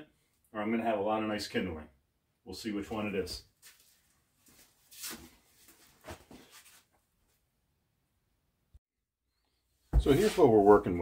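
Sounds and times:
soft footsteps: 0:10.0 - 0:10.5.

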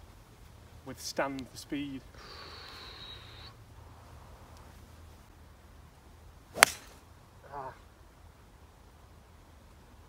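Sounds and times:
golf ball struck off tee: 0:06.5 - 0:07.0
golf club swing swish: 0:06.5 - 0:07.0.

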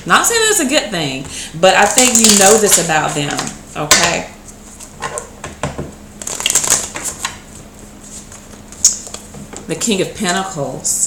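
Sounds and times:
cards being shuffled by hand: 0:06.2 - 0:07.4.

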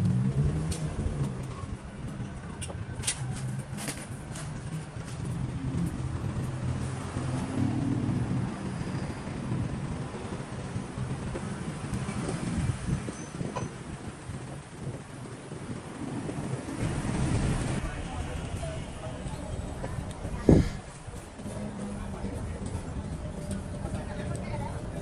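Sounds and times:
vehicle engine running: 0:00.0 - 0:16.1, 0:16.7 - 0:25.0
city street traffic: 0:00.0 - 0:25.0.

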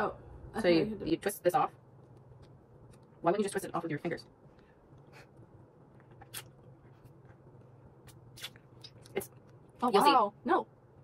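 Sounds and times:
low room hum: 0:00.0 - 0:11.0
mouth clicks and smacks: 0:05.9 - 0:09.6.

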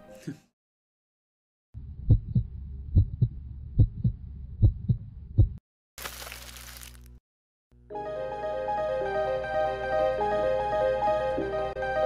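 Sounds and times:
heartbeat double thumps: 0:02.0 - 0:05.6.

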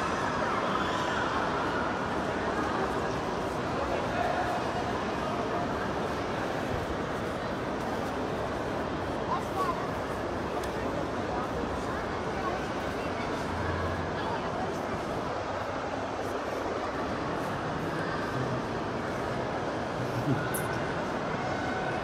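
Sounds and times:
crowd hubbub: 0:00.0 - 0:22.0.

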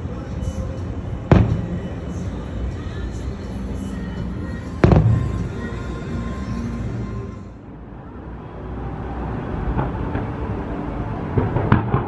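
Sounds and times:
steady music: 0:00.0 - 0:08.0.

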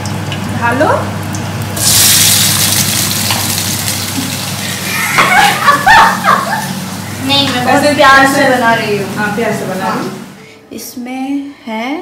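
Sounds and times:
vegetables sizzling in hot oil: 0:00.0 - 0:05.3.

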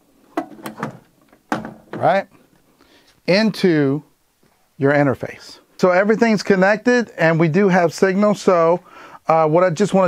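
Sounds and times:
thump against rack gear: 0:00.4 - 0:02.1.

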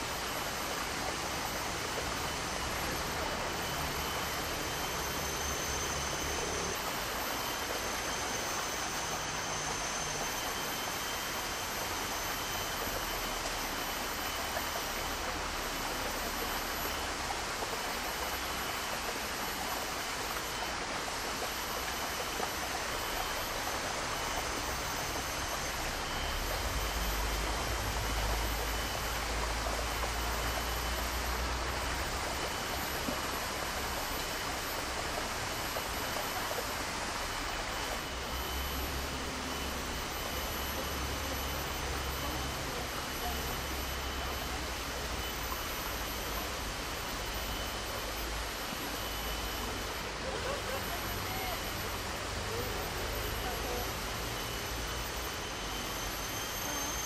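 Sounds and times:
faint high whine: 0:00.0 - 0:57.0.

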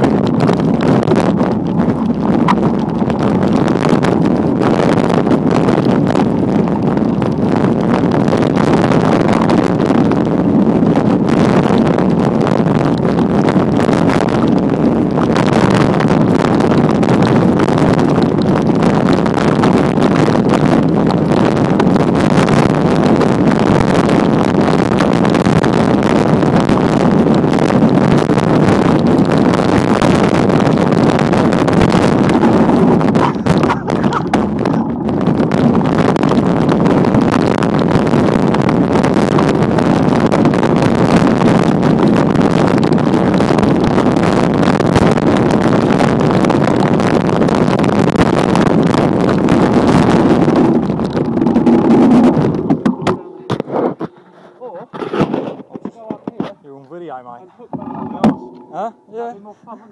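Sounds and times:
wind buffeting microphone: 0:00.0 - 0:59.9
tyres rolling over dirt trail: 0:09.3 - 0:59.9.

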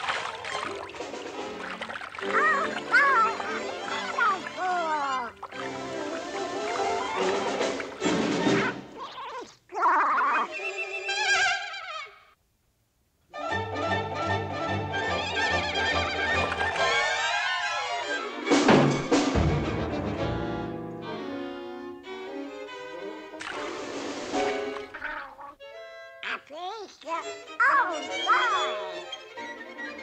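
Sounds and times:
orchestral cartoon music: 0:00.4 - 0:09.0, 0:13.3 - 0:26.3, 0:27.1 - 0:30.0.

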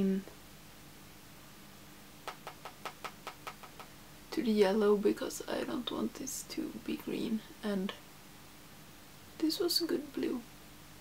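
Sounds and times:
brush tapping on palette: 0:02.3 - 0:03.9.

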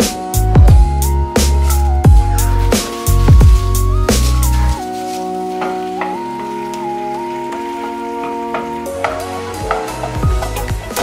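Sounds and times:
background music of held chords: 0:00.0 - 0:11.0
spinach sizzling in oil: 0:01.0 - 0:11.0.

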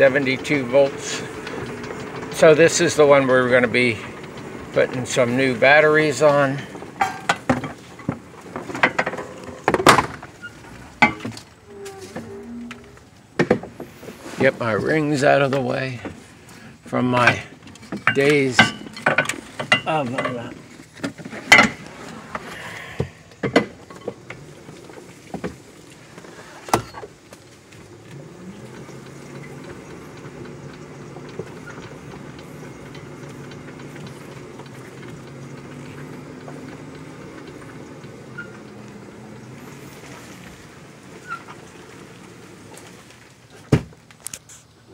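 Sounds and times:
electric motor humming: 0:27.8 - 0:43.1.

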